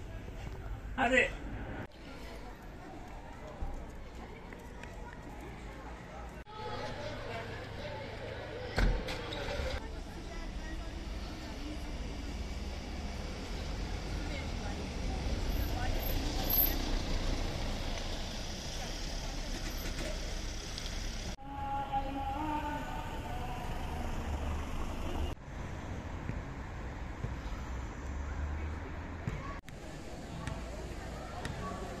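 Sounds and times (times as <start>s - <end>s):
voices: 0.0s - 20.6s, 21.3s - 25.4s, 27.4s - 32.0s
minibus rumbling along street: 5.8s - 32.0s.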